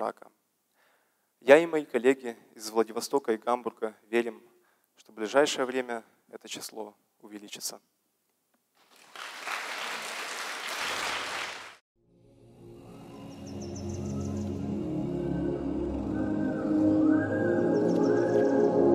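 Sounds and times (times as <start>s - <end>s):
audience applause: 8.8s - 11.8s
closing music with held chords: 12.0s - 18.9s.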